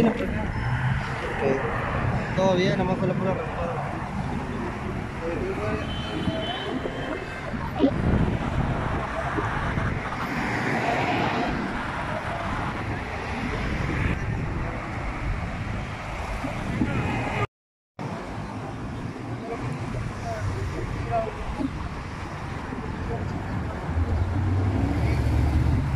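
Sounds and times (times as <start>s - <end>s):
wind buffeting microphone: 0.0s - 17.5s
road traffic: 0.0s - 25.9s.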